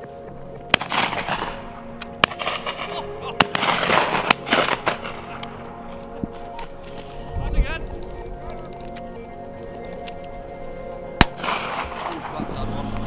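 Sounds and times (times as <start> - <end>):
background music: 0.0 - 13.0
shotgun shots with echo: 0.7 - 1.6, 2.2 - 5.5, 11.2 - 12.5.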